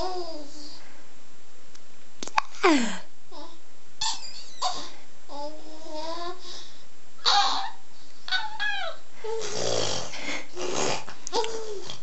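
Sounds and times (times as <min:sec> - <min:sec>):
baby babbling: 0:04.6 - 0:06.4, 0:07.2 - 0:09.4.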